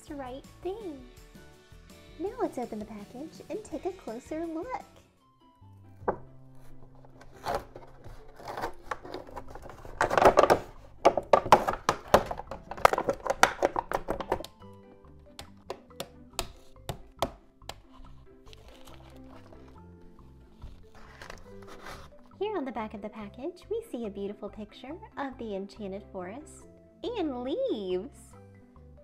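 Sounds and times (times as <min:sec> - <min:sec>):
soft background music: 0:00.0 - 0:29.0
plastic packaging crinkling: 0:06.6 - 0:14.4, 0:17.8 - 0:22.3
sharp clicks and taps: 0:15.3 - 0:17.9.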